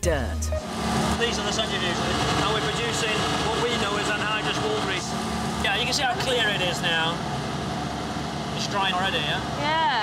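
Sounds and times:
centrifuges humming: 0.0 - 10.0
man speaking: 1.2 - 7.2.

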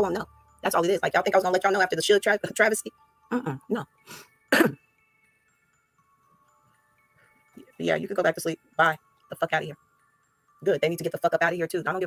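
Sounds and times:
woman clearing her throat: 4.5 - 4.8.

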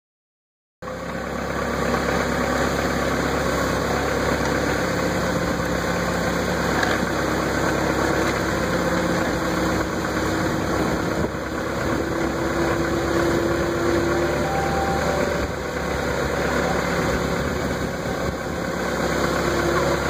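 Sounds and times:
forklift engine running: 0.8 - 20.0.

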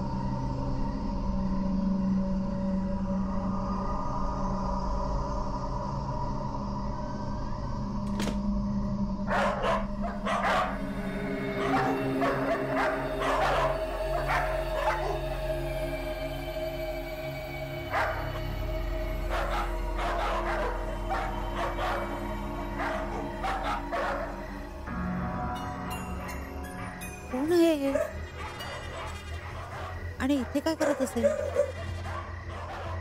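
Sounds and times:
music drone of low tones: 0.0 - 33.0
dog barking: 9.3 - 10.9, 11.6 - 15.4, 17.9 - 18.4, 19.3 - 24.6, 27.9 - 33.0.

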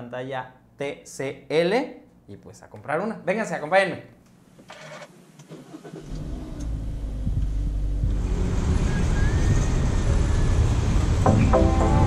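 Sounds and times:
car engine starting and running: 5.4 - 12.0.

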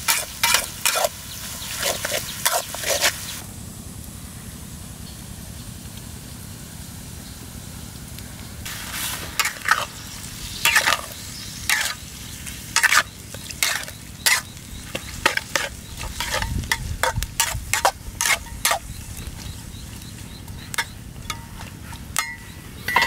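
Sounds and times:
metal ladle scraping wok: 0.0 - 3.3, 8.7 - 20.0, 20.7 - 23.0
faint sizzle: 0.0 - 23.0.

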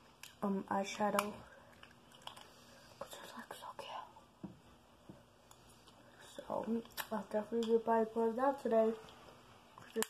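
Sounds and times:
faint whispering: 3.0 - 4.2.

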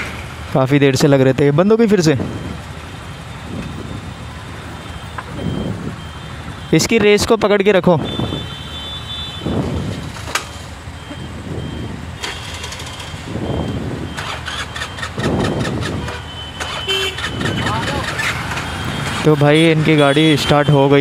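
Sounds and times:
scooter engine revving: 12.1 - 19.3.

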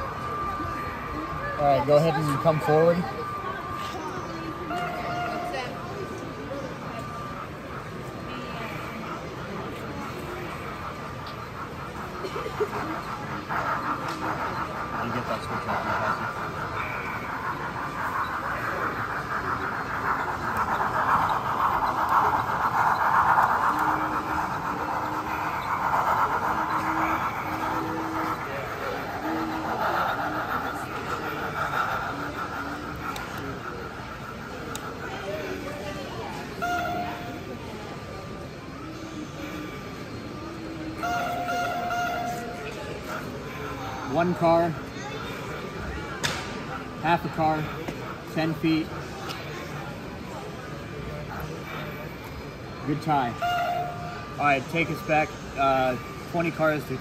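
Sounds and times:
murmur of chatter: 0.0 - 57.0
toy train motor whirring: 0.0 - 57.0.

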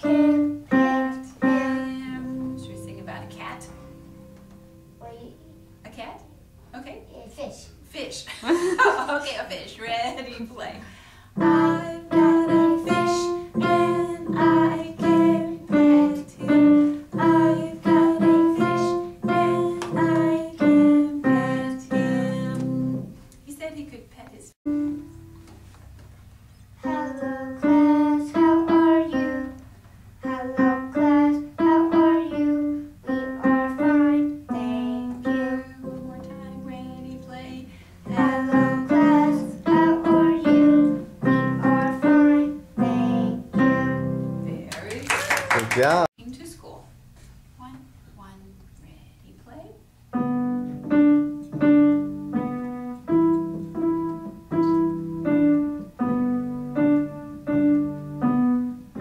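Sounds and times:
digital piano notes: 0.0 - 6.7, 24.7 - 25.7, 50.1 - 59.0.

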